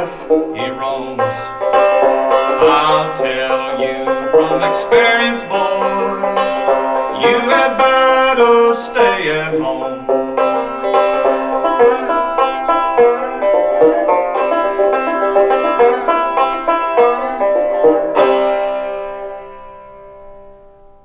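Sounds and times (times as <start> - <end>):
banjo playing: 0.0 - 20.8.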